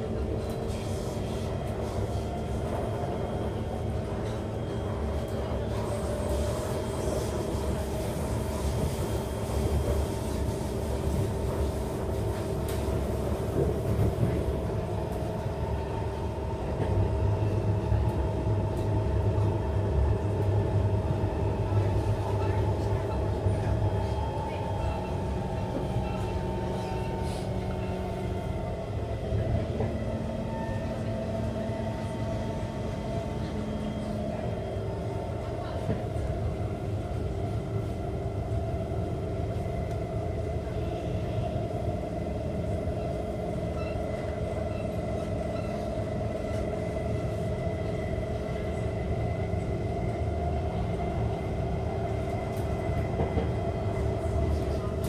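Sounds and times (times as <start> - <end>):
steady train hum: 0.0 - 55.0
train wheels rumbling on rails: 0.0 - 55.0.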